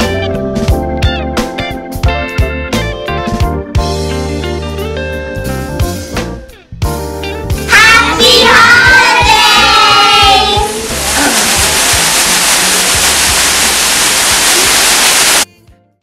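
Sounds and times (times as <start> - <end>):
loud steady rushing noise: 10.1 - 15.5.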